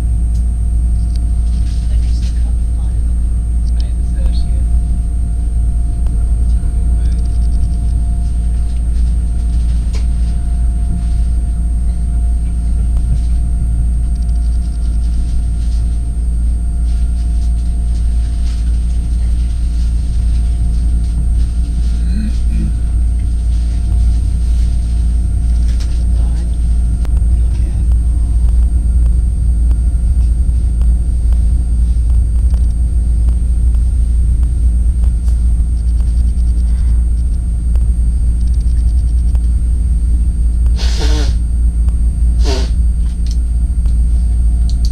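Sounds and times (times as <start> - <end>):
train rumbling over tracks: 0.0 - 44.8
faint constant whine: 0.0 - 44.9.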